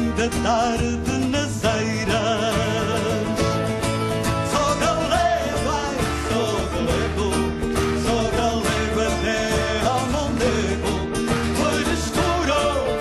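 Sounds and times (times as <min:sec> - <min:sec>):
plucked guitar strings: 0:00.0 - 0:13.0.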